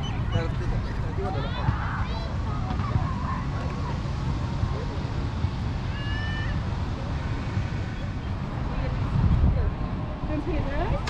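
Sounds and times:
distant children playing: 0.0 - 9.9
steady low rumble: 0.0 - 11.0
faint high calls and shouts: 5.8 - 8.4.

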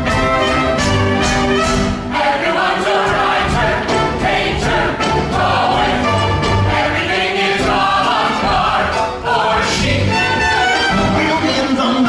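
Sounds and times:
pit orchestra: 0.0 - 12.0.

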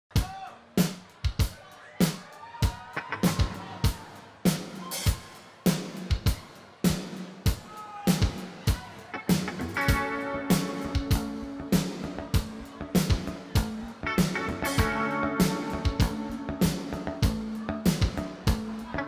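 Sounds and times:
drum kit playing a beat: 0.1 - 19.0.

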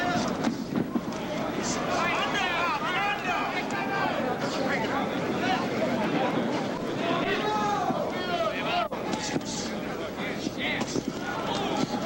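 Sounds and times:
crowd din: 0.0 - 12.0
spectators shouting and yelling: 0.0 - 12.0.

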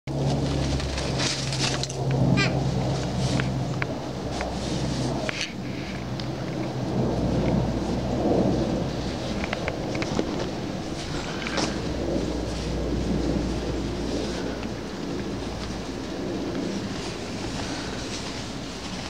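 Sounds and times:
low rumble and hum: 0.1 - 19.0.

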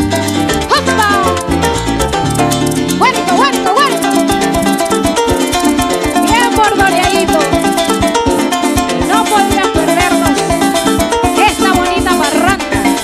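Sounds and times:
bass: 0.0 - 13.0
harp plucked runs: 0.0 - 13.0
maracas: 0.0 - 13.0.

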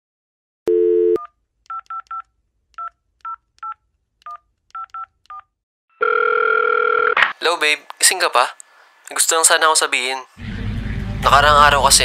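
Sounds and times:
telephone dial tone: 6.0 - 7.2.

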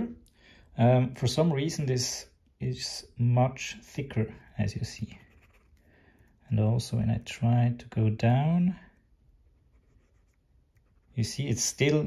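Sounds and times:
stylus scratching on tablet screen: 5.0 - 5.9, 9.3 - 11.6.

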